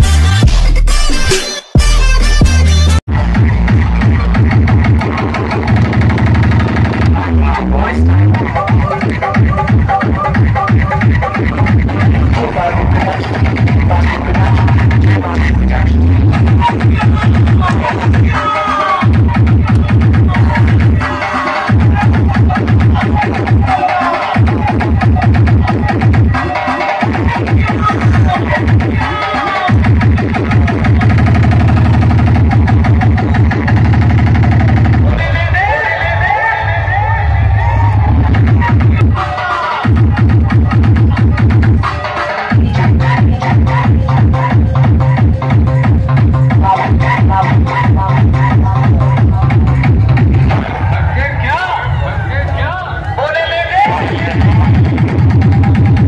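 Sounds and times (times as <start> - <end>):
electronic dance music: 0.0 - 56.0.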